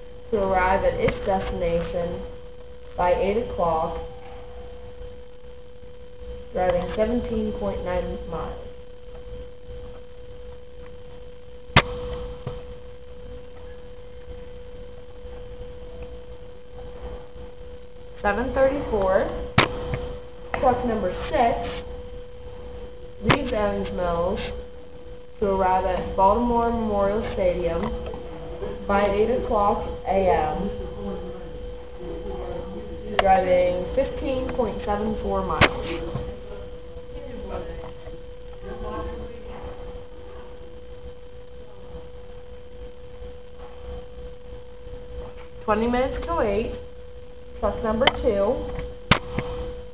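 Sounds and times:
steady single-pitched tone: 0.0 - 49.9.

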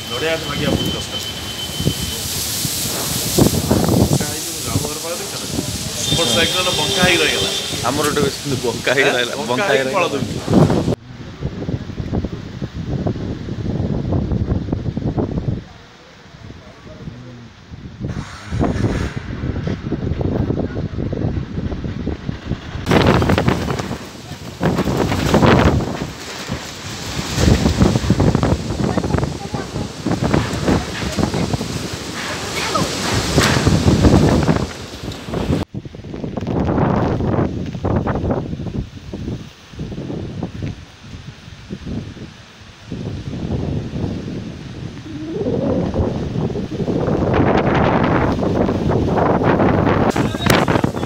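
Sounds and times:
wind and rain hiss: 0.0 - 51.0.

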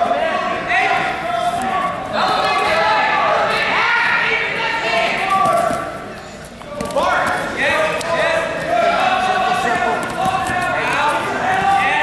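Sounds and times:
people shouting: 0.0 - 5.8, 7.0 - 12.0.

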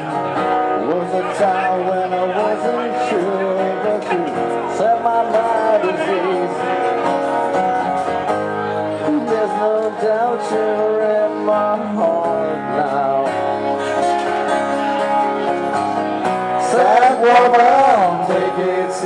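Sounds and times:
acoustic guitars playing: 0.0 - 19.0
sliding guitar melody: 0.0 - 19.0.

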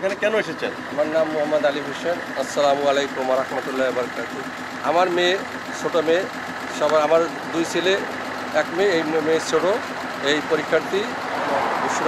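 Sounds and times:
man speaking: 0.0 - 12.0
vehicle engine idling: 0.0 - 12.0.

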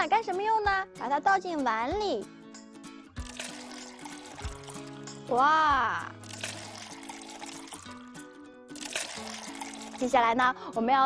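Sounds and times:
background music: 0.0 - 11.0
yogurt pouring into bowl: 3.2 - 5.2, 6.2 - 10.2.

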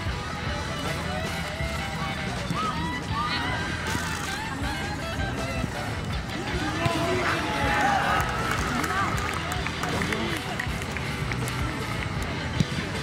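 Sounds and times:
background music: 0.0 - 13.0
players shouting: 6.3 - 10.5.

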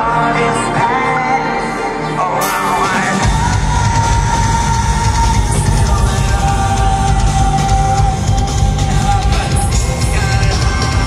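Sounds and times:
live heavy rock band: 0.0 - 11.0.

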